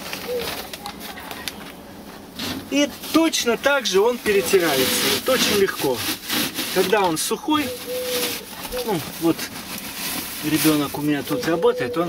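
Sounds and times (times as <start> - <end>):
dry moss and plastic sacks rustling: 0.0 - 12.0.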